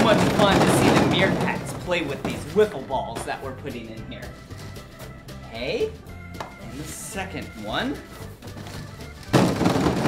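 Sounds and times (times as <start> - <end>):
plastic balls clattering into pool: 0.0 - 3.4, 8.6 - 10.0.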